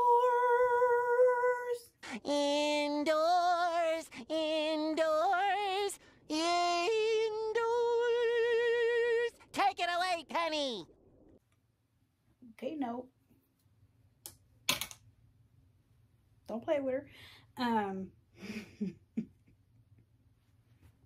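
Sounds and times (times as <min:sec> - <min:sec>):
cartoon character singing: 0:00.0 - 0:10.9.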